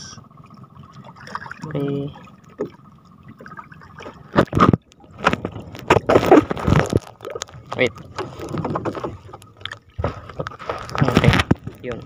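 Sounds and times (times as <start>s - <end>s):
water splashing against boat hull: 0.0s - 12.0s.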